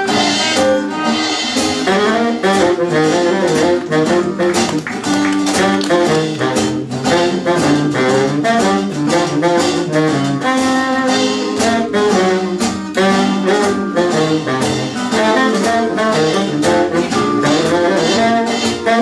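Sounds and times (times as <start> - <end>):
bass saxophone: 0.0 - 19.0
jazz band playing: 0.0 - 19.0.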